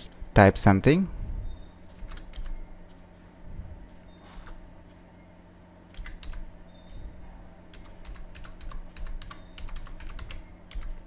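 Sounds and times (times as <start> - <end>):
faint hum: 0.0 - 11.0
keyboard typing: 1.9 - 2.6, 5.9 - 6.6, 7.7 - 11.0.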